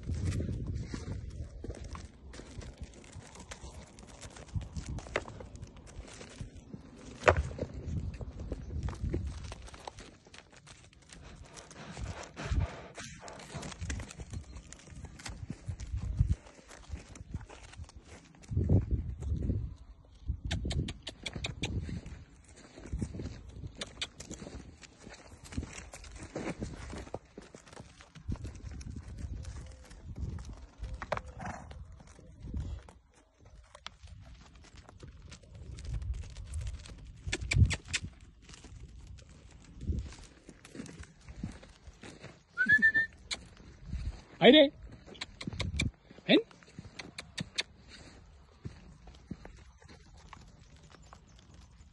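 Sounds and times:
footsteps on stony ground: 0.0s - 51.9s
person whistling: 42.6s - 43.3s.

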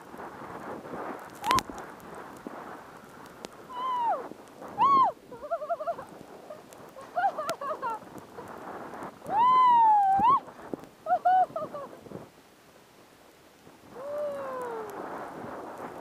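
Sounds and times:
skis hissing through powder snow: 0.0s - 16.0s
person whooping: 1.4s - 1.6s, 3.7s - 6.1s, 9.2s - 10.5s, 11.1s - 11.9s, 13.9s - 15.2s.

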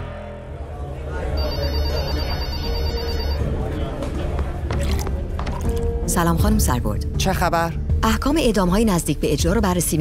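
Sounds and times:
telephone ringing electronic trill: 1.4s - 3.4s.

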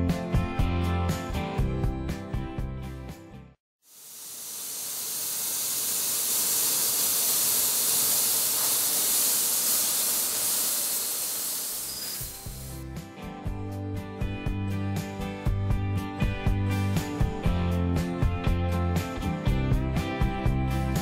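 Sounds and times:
laser cutter hissing: 3.9s - 12.8s.

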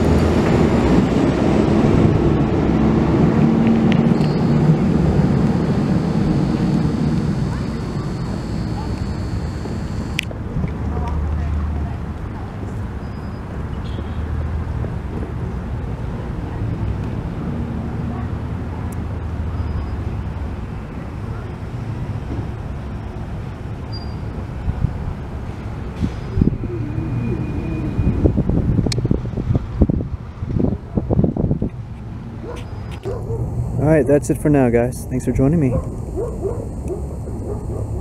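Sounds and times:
road traffic rumble: 0.0s - 38.0s
pitched calls: 4.0s - 10.2s, 26.3s - 28.3s
wind on microphone: 26.0s - 33.8s.

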